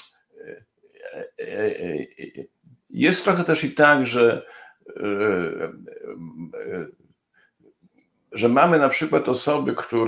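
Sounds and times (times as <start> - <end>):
man talking over video call: 0.0 - 6.9, 8.4 - 10.0.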